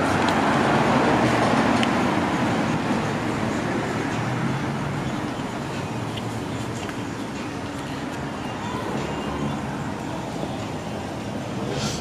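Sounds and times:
passing vehicle rumble: 0.0 - 12.0.

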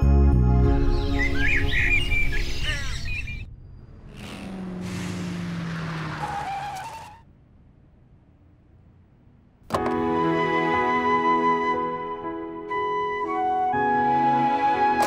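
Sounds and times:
birds chirping: 0.8 - 4.6.

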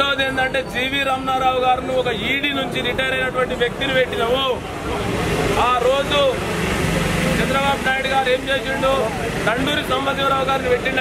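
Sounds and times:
man addressing a crowd: 0.0 - 11.0.

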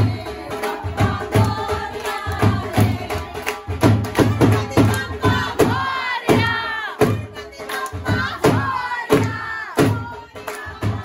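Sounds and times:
rhythmic hand claps: 0.0 - 11.0
women chanting in unison: 4.2 - 11.0.

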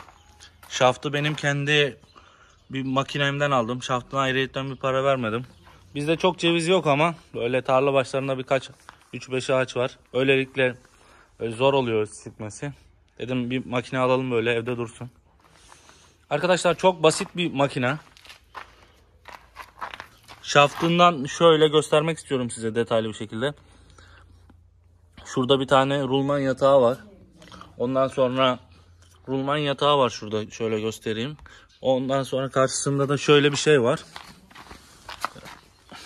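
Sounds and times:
footsteps on gravel: 0.0 - 1.7, 8.6 - 9.3, 15.3 - 21.4, 32.8 - 36.0.

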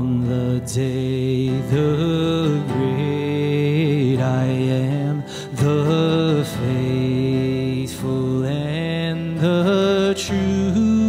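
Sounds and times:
person singing worship song: 0.0 - 11.0
singer breathing: 5.2 - 5.6.

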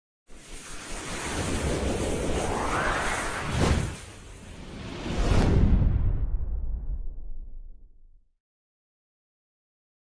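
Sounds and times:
rushing whoosh: 0.3 - 7.2.

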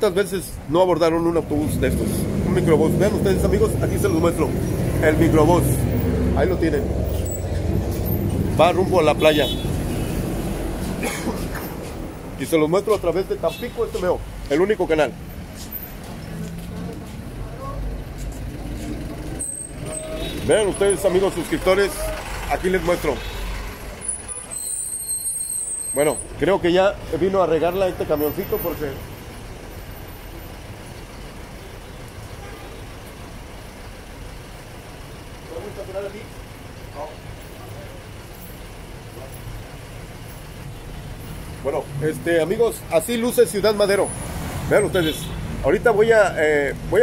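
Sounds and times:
traffic engines rumbling: 0.0 - 47.0.

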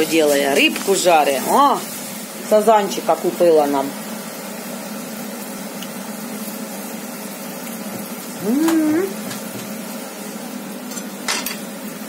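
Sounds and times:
fish sizzling in a frying pan: 0.0 - 12.0.

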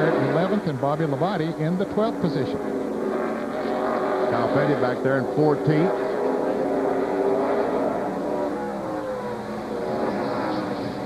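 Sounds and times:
race car engines in a pack: 0.0 - 11.0.

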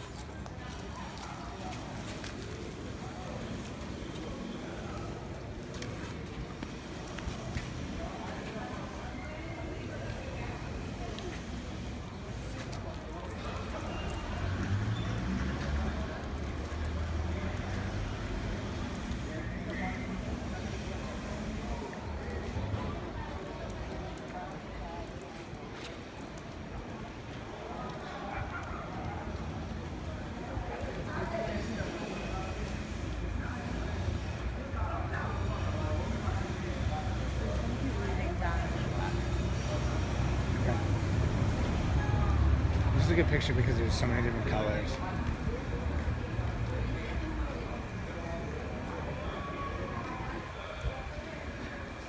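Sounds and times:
people talking nearby: 0.0 - 52.0
vehicle traffic rumble: 0.0 - 52.0.

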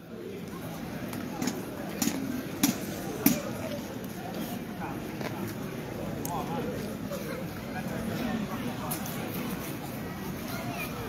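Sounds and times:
people chattering: 0.0 - 11.0
footsteps on street paving: 0.4 - 11.0.

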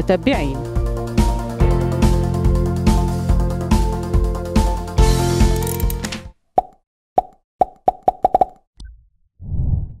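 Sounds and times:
music: 0.0 - 6.3
low rumbling whoosh: 9.4 - 10.0.

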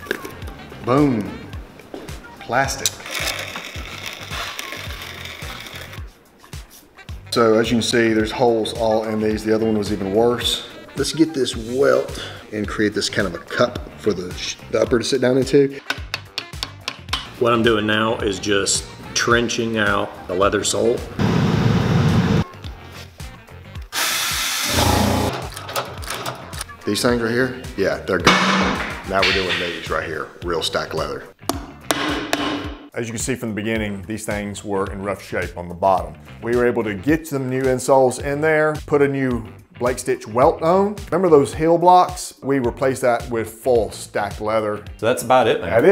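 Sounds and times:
leather trimming machine running: 24.0 - 25.3
low music beat: 31.4 - 33.0.

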